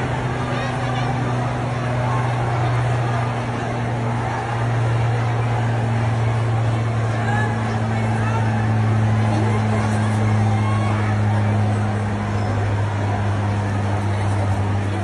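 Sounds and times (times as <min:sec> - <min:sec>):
faint voices: 0:00.0 - 0:15.0
street noise: 0:00.0 - 0:15.0.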